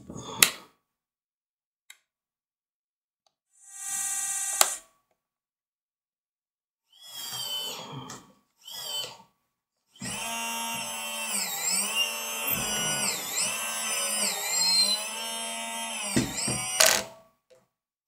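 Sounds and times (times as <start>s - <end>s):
electric motor whine: 10.0s - 17.1s.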